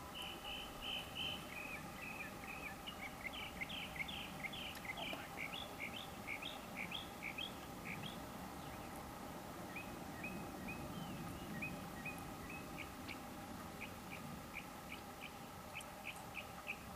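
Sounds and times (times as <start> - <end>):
songbird whistling: 0.1 - 8.2.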